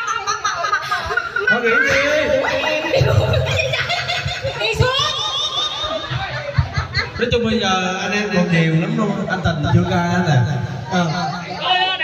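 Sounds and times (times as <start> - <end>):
group of people laughing: 0.0 - 7.8
people chattering: 0.0 - 12.0.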